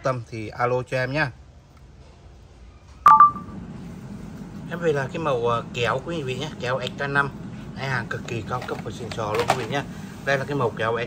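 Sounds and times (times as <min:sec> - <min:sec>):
low steady hum: 0:01.4 - 0:11.0
short electronic beep: 0:03.0 - 0:03.5.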